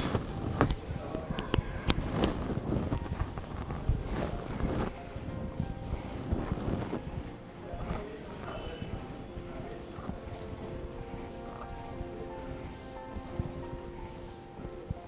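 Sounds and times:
microphone rubbing on shirt: 0:00.0 - 0:15.0
steady breathing: 0:00.0 - 0:15.0.

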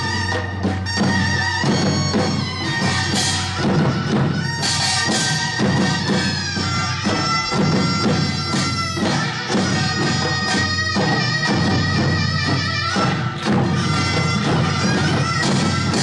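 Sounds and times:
reedy double-reed wind melody: 0:00.0 - 0:16.0.

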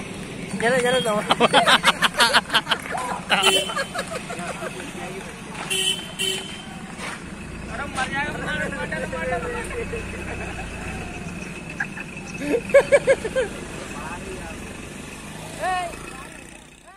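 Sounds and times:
engine rumbling past: 0:00.0 - 0:16.9
vehicle horn toots: 0:03.3 - 0:04.9, 0:05.6 - 0:06.8.

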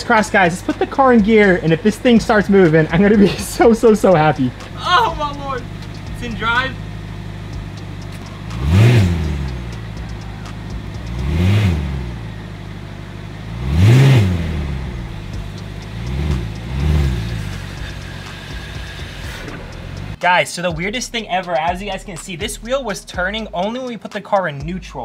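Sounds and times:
car engine idling and revving: 0:00.0 - 0:25.0.

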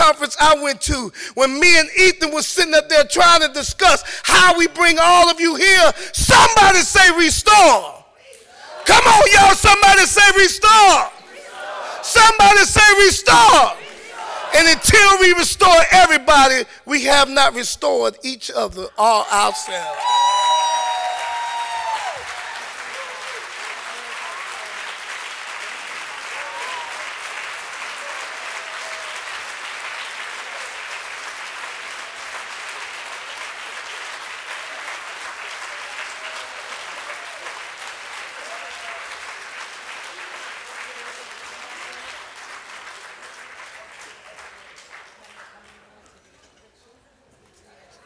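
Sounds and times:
large audience applauding: 0:19.3 - 0:46.0.

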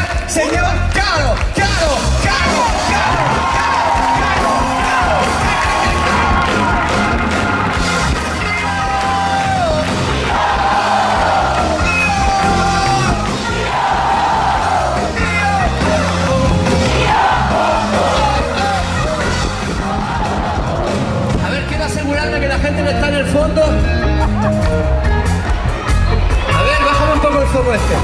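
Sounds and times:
crowd shouting and cheering: 0:00.0 - 0:28.0
live band playing rock-pop: 0:00.0 - 0:28.0.

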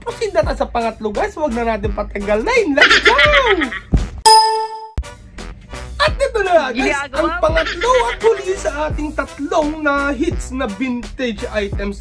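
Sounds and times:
faint background music: 0:00.0 - 0:04.1, 0:05.0 - 0:12.0
bright bell-like ding: 0:04.3 - 0:05.0.

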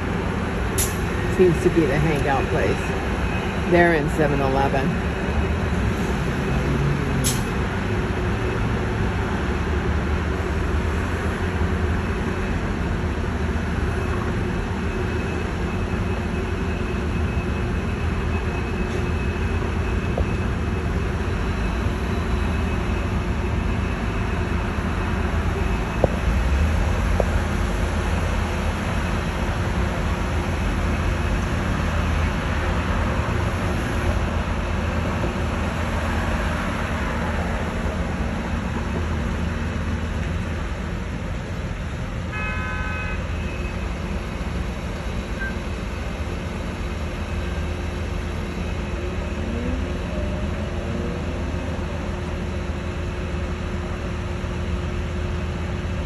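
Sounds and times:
city street traffic rumble: 0:00.0 - 0:56.0
car horn toot: 0:42.3 - 0:43.4.

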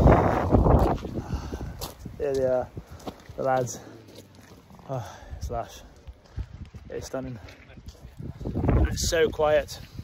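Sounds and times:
wind buffeting microphone: 0:00.0 - 0:03.5, 0:05.1 - 0:10.0.

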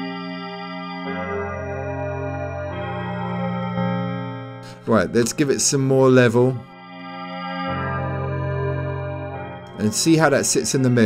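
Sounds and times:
sustained synth pad chord: 0:06.7 - 0:10.5.

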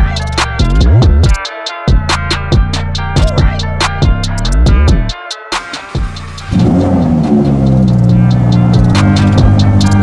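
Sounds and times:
electronic music: 0:00.0 - 0:10.0
car engine starting and idling: 0:06.0 - 0:10.0.

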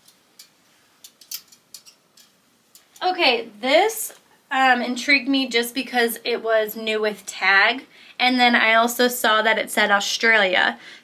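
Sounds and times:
hangers clicking on metal rail: 0:00.0 - 0:03.0.

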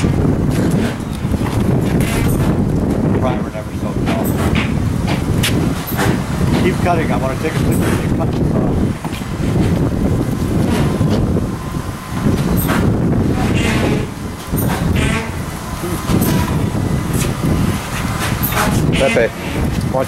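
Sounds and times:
steady low rumble: 0:00.0 - 0:20.0
background voices talking: 0:01.4 - 0:05.5, 0:06.4 - 0:11.0, 0:13.2 - 0:20.0.

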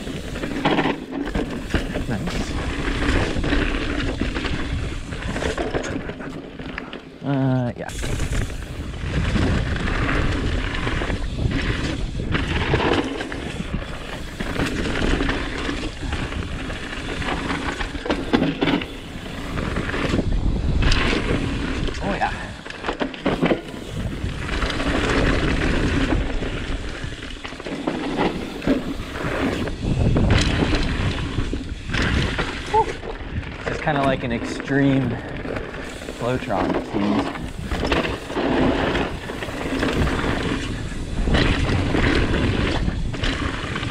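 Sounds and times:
tyres rumbling on dirt: 0:00.0 - 0:06.9, 0:07.9 - 0:43.9
bike knocking and clattering: 0:00.0 - 0:07.0, 0:07.9 - 0:43.9.

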